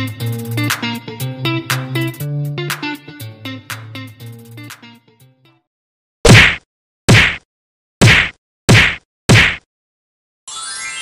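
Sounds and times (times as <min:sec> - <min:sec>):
short loud whack effects: 0:06.3 - 0:07.4, 0:08.0 - 0:09.7.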